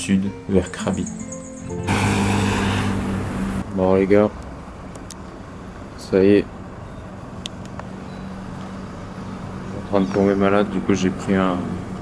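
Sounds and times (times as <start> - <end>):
background music: 0.0 - 3.6
low traffic hum: 1.2 - 12.0
road traffic hiss: 1.6 - 12.0.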